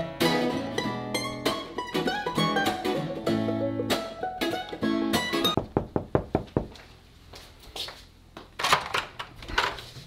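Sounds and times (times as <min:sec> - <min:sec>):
plucked-string music: 0:00.0 - 0:05.6
knocking on door: 0:05.6 - 0:06.8.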